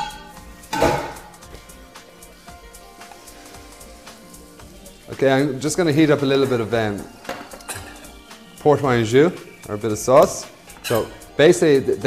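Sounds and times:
saucepan and utensils clattering: 0.0 - 1.5, 6.1 - 8.3, 10.3 - 11.9
light background music: 0.0 - 12.0.

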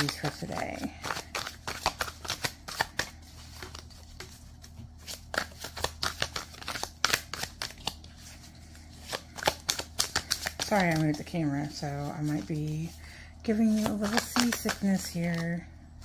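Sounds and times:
cards being shuffled: 0.0 - 15.6.

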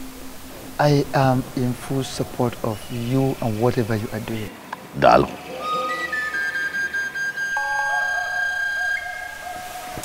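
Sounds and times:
film music of long held notes: 0.0 - 10.0.

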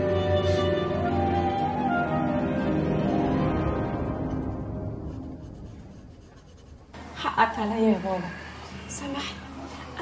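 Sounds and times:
background music: 0.0 - 6.9
hand tool scratching on wood: 5.1 - 7.0.

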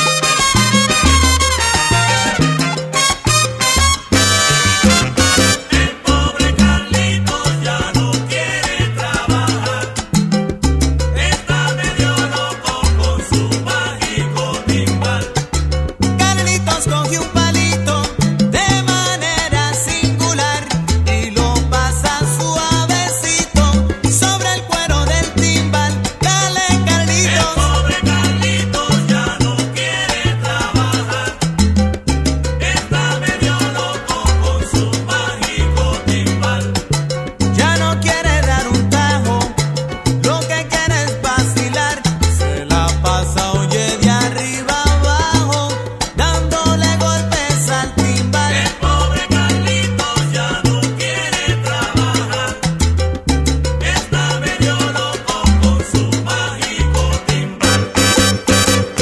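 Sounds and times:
bass line: 0.0 - 59.0
percussion: 0.0 - 59.0
salsa band playing: 0.0 - 59.0.

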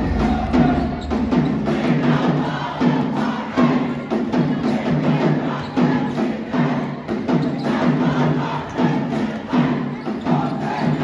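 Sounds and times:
band percussion: 0.0 - 11.0
people chanting in rhythm: 0.0 - 11.0.

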